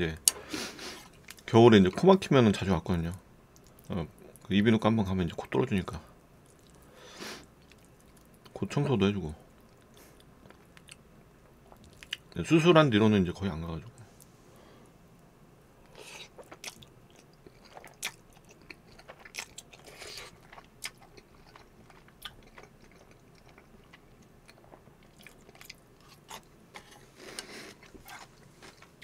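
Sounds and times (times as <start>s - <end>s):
close chewing mouth clicks: 16.0s - 28.3s.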